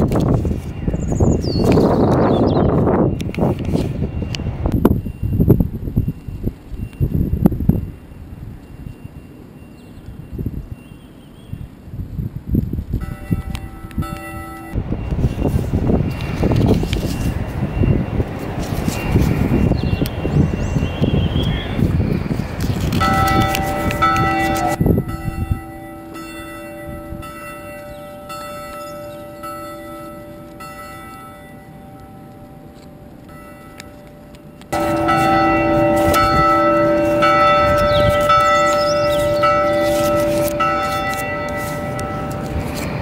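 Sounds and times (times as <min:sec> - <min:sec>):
bells ringing: 0:13.0 - 0:21.9, 0:22.8 - 0:43.0.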